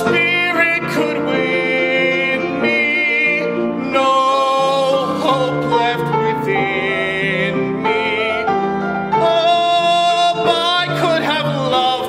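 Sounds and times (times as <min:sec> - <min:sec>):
grand piano: 0:00.0 - 0:12.0
man singing a ballad: 0:00.0 - 0:12.0.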